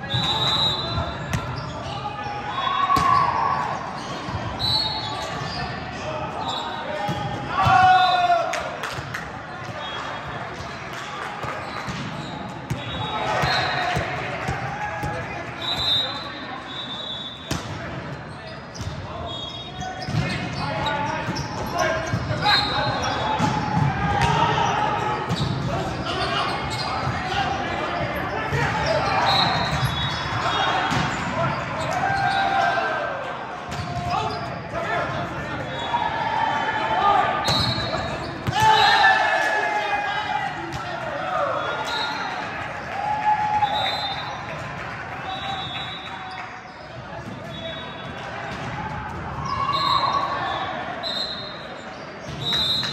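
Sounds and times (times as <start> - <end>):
players' voices and calls: 0.0 - 52.9.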